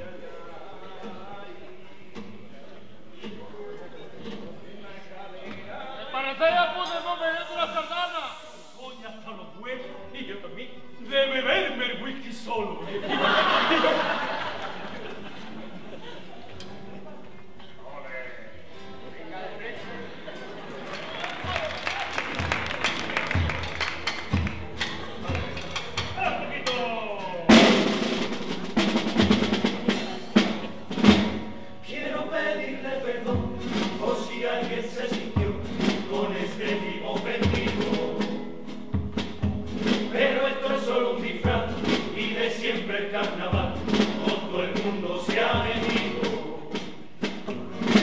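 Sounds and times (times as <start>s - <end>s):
chorus singing together: 6.9s - 9.2s, 12.7s - 16.2s, 27.5s - 38.9s, 39.6s - 48.0s
drums keeping the beat: 20.6s - 31.6s, 33.0s - 48.0s
loud drum hit: 27.5s - 31.5s.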